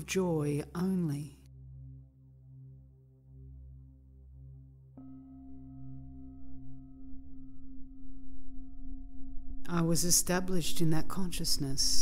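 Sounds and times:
low hum: 0:00.1 - 0:12.0
soft ringing drone music: 0:01.4 - 0:12.0.

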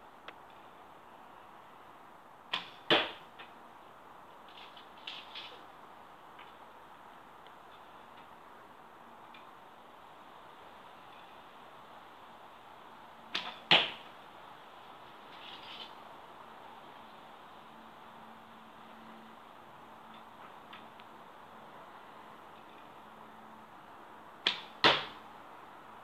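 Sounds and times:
arrow thud into cardboard: 0:02.6 - 0:03.2, 0:13.4 - 0:14.0, 0:24.5 - 0:25.2.

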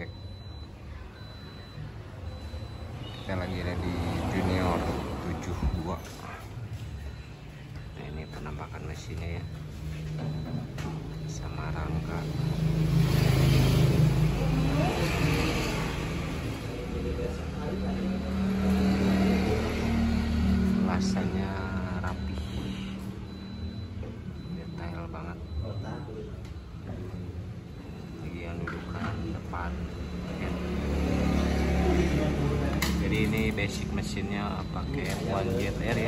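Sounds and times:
engine revving: 0:02.6 - 0:05.7, 0:11.1 - 0:23.8, 0:27.9 - 0:36.0.

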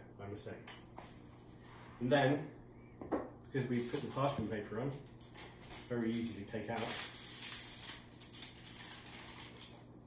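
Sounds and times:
parchment paper rustling: 0:05.3 - 0:10.0.

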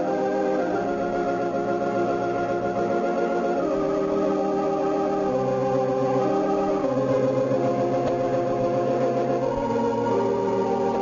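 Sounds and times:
organ playing sustained chords: 0:00.0 - 0:11.0.

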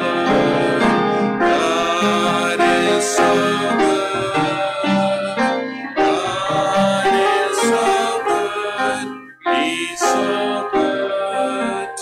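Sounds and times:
congregation singing: 0:00.0 - 0:12.0
piano accompaniment: 0:00.0 - 0:12.0.

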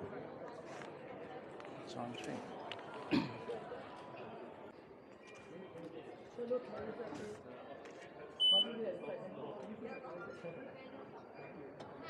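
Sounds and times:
background chatter of people: 0:00.0 - 0:12.0
short high beep: 0:08.4 - 0:08.7.

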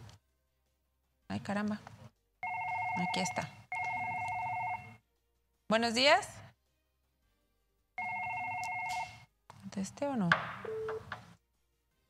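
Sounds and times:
telephone ringing: 0:02.4 - 0:05.0, 0:08.0 - 0:09.2, 0:10.7 - 0:11.1.

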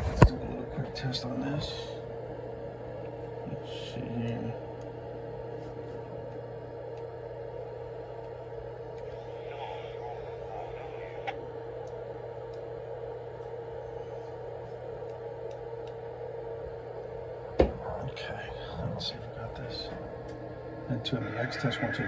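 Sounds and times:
electrical hum from radio equipment: 0:00.0 - 0:22.0.

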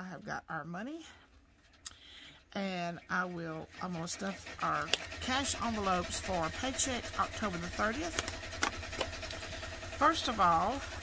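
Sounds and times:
steady low hum: 0:00.0 - 0:11.0
plastic envelopes clicking and tapping: 0:08.1 - 0:09.5.

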